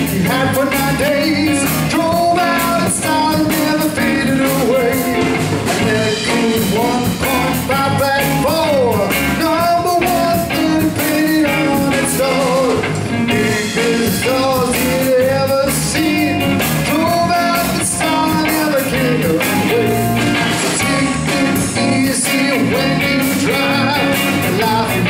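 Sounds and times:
drum kit steady beat: 0.0s - 25.0s
guitar lead with bent notes: 0.0s - 25.0s
rock band playing: 0.0s - 25.0s.

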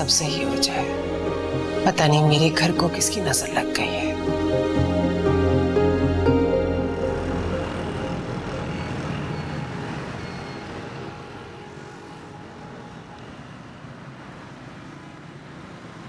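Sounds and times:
background music: 0.0s - 13.2s
hum of passing cars: 0.0s - 16.0s.

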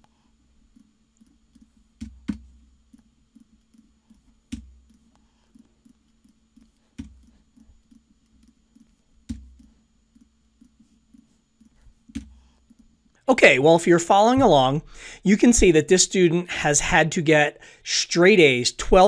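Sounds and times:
faint steady hum: 0.0s - 19.0s
computer mouse clicks: 0.7s - 12.9s.

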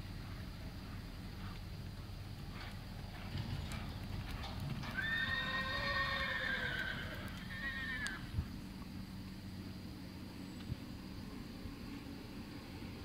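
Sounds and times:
hoofbeats on soft dirt: 0.0s - 13.0s
horse whinnying: 4.8s - 8.2s.

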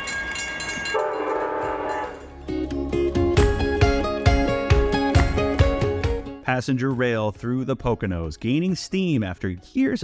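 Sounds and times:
train horn chord: 0.9s - 2.3s.

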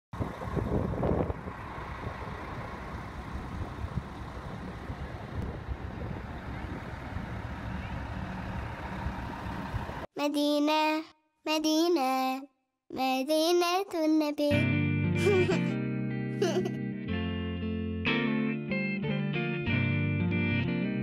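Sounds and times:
vehicle engines rumbling: 0.2s - 10.1s.

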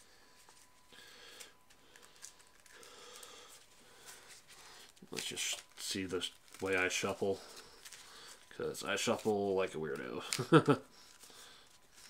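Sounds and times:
playing cards rustling: 0.3s - 12.0s.

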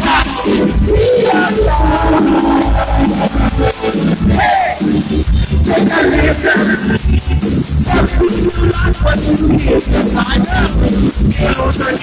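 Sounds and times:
person singing: 0.0s - 7.1s, 7.7s - 12.0s
live band music through pa: 0.0s - 12.0s.

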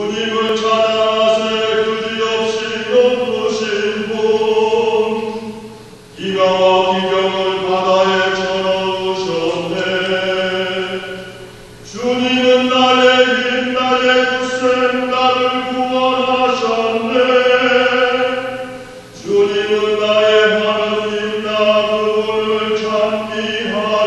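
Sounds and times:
church choir chanting: 0.0s - 24.0s.

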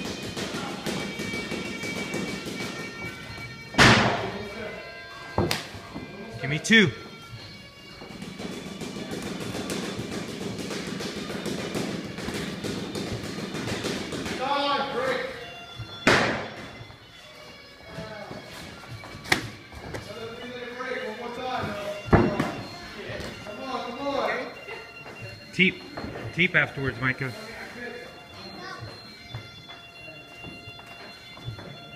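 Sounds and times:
background music: 0.0s - 31.9s.

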